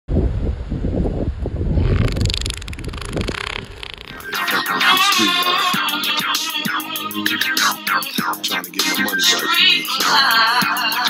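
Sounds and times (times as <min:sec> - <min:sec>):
wind buffeting microphone: 0:00.1 - 0:04.2.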